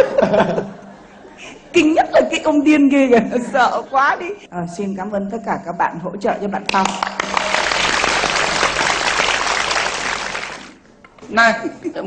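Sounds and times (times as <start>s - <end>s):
audience applauding: 6.7s - 10.8s.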